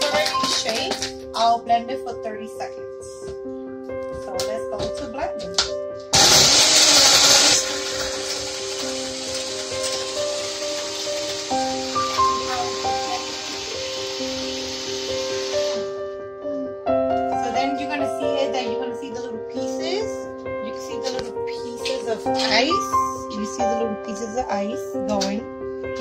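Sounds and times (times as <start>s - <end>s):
background piano music: 0.0s - 26.0s
blender crushing ice: 6.1s - 16.0s.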